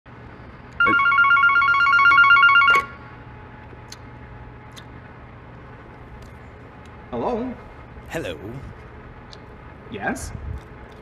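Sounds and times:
warbling electronic telephone ring: 0.8 - 3.0.

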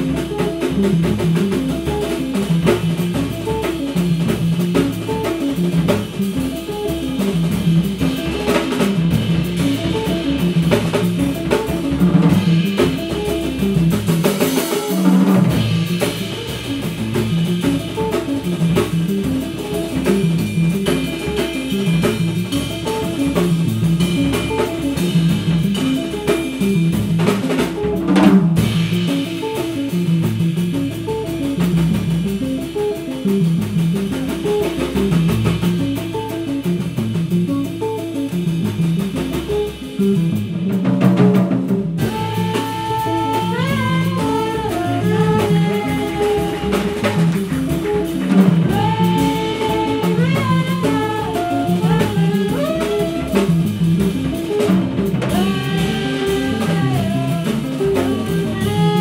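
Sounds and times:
double bass: 0.0 - 59.0
drum kit: 0.0 - 59.0
guitar: 0.0 - 59.0.

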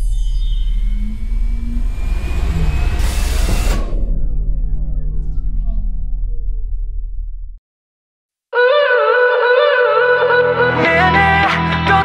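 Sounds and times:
deep bass drone: 0.0 - 7.6
falling synth tones: 0.0 - 7.6
rising whooshing swell: 0.0 - 7.6.

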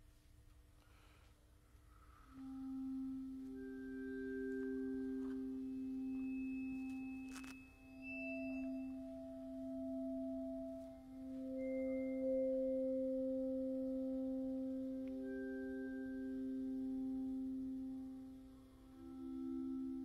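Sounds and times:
bowed percussion bars ringing: 2.0 - 20.0.

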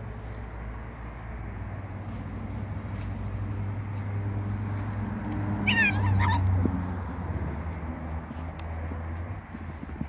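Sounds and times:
fox squealing: 5.6 - 6.5.

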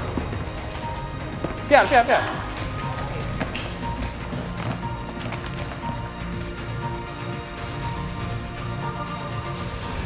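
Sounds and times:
timer music with steady beat: 0.0 - 10.0.

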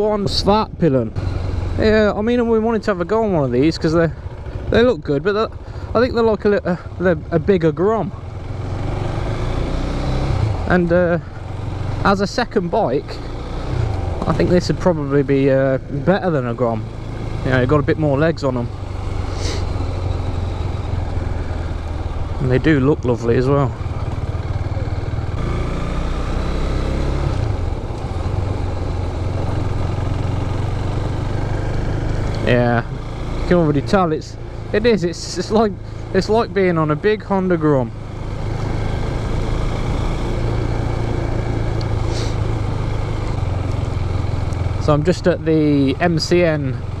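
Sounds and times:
motorcycle engine running: 0.0 - 47.0.

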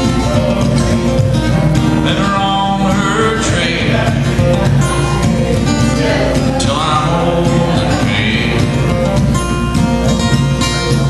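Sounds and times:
acoustic guitar playing bluegrass: 0.0 - 11.0.

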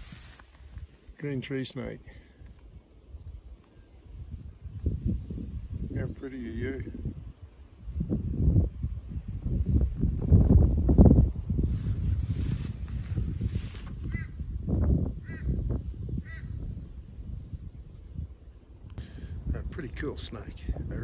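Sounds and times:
wind buffeting microphone: 2.4 - 21.0.

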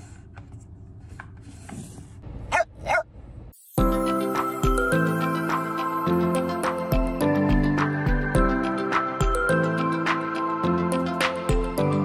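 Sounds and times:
dog barking: 2.5 - 3.1
music: 3.6 - 12.0.

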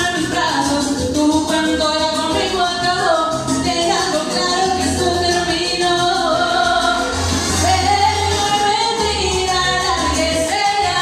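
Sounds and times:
backing track with bass line: 0.0 - 11.0
woman singing into microphone: 0.0 - 11.0.

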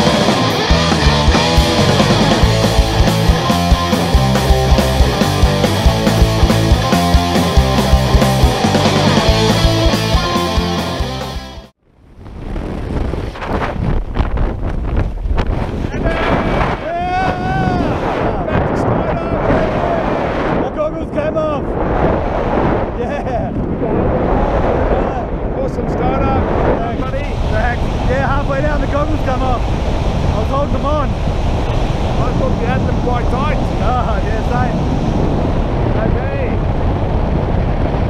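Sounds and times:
music: 0.0 - 11.8
wind buffeting microphone: 12.0 - 38.0.

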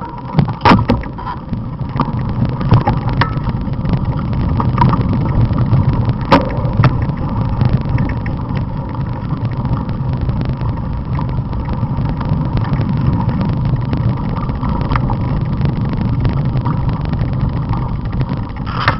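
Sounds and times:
mountain bike rolling on dirt: 0.0 - 18.9.

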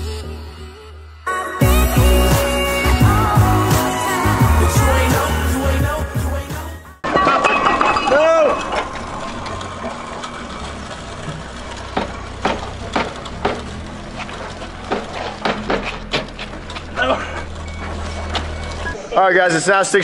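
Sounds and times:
weight plates knocking and clanking: 7.0 - 9.1
pallet jack rumbling over concrete: 8.1 - 19.0.

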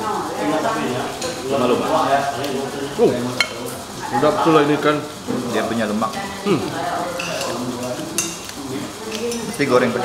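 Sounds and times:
cutlery scraping on a plate: 7.2 - 9.6
sharp cutlery clink: 7.2 - 9.6.

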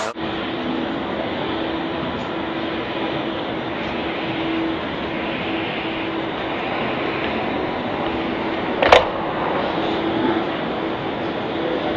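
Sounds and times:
steady rushing noise: 0.0 - 11.9.

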